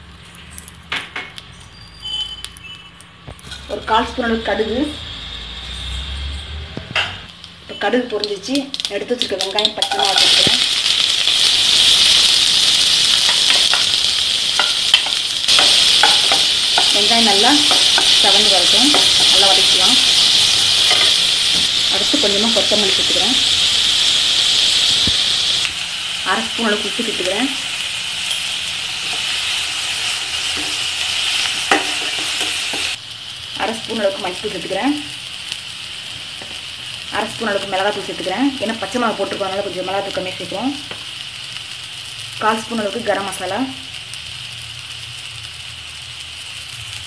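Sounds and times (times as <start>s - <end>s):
vegetables sizzling in a wok: 3.3s - 47.0s.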